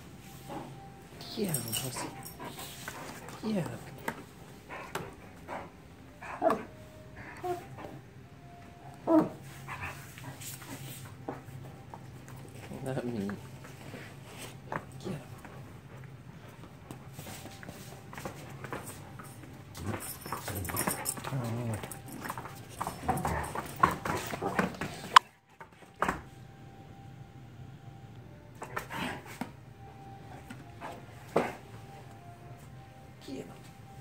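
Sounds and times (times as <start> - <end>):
dog whining: 4.7 - 10.4
dogs scuffling: 16.6 - 26.0.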